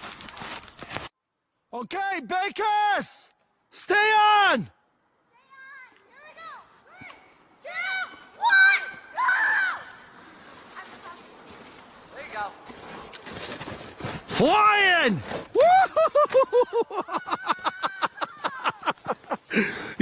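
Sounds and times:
people shouting excitedly: 5.4 - 10.1
bursts of laughter: 15.6 - 20.0.

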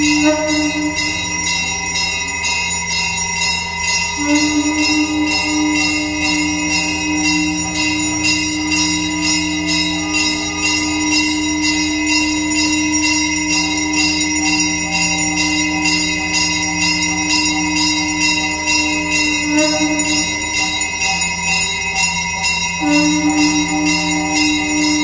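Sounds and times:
low droning tone: 0.0 - 25.0
temple bells rung rapidly: 0.0 - 25.0.

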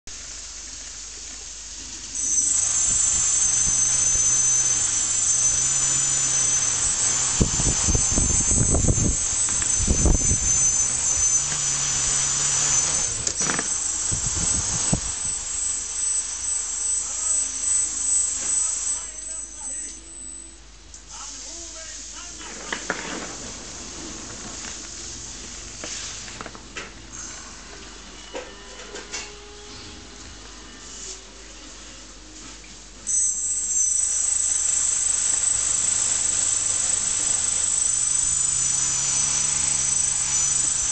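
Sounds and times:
quadcopter motors whining: 1.1 - 20.6, 33.1 - 40.9.

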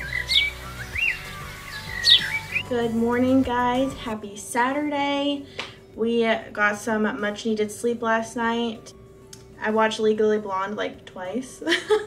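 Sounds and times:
birds chirping: 0.0 - 4.2
soft background music: 0.0 - 12.0.

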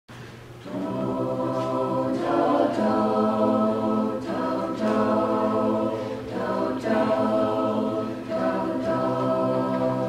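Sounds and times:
a cappella group singing chords: 0.5 - 10.0.

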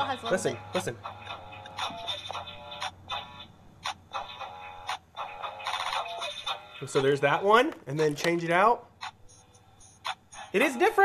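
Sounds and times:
electronic toy music loop: 0.0 - 8.1, 9.0 - 11.0.

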